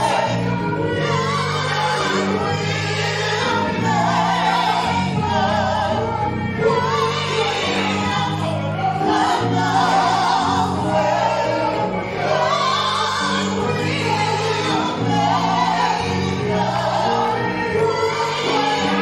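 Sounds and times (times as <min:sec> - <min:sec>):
gospel choir singing in harmony: 0:00.0 - 0:19.0
instrumental accompaniment low chords: 0:00.0 - 0:19.0.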